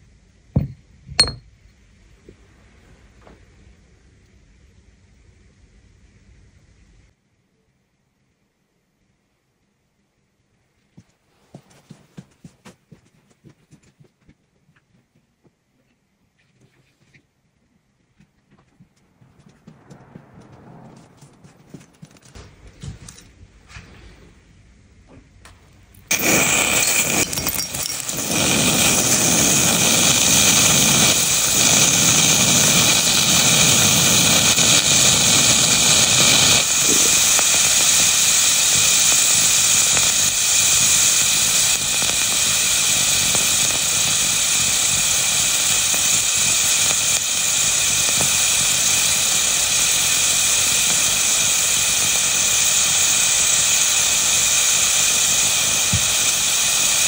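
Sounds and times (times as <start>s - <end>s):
glass cracking: 26.1s - 29.2s
hot iron ball sizzling in water: 26.1s - 57.0s.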